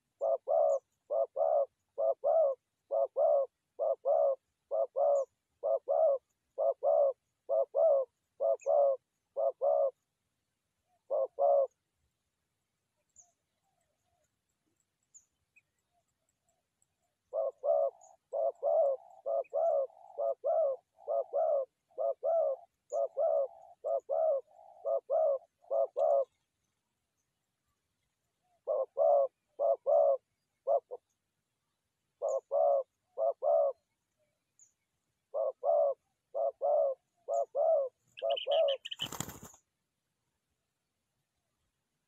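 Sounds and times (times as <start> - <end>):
dove cooing: 0.0 - 10.0, 10.9 - 11.8, 17.2 - 26.4, 28.4 - 31.2, 32.2 - 33.9, 35.2 - 39.6.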